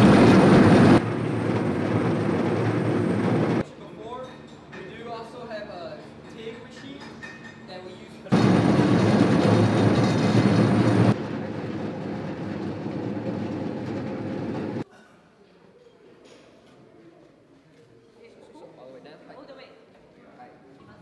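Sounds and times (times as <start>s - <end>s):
diesel engines running: 0.0s - 3.6s, 8.3s - 14.8s
harsh loud machine noise: 0.0s - 3.6s, 8.3s - 14.8s.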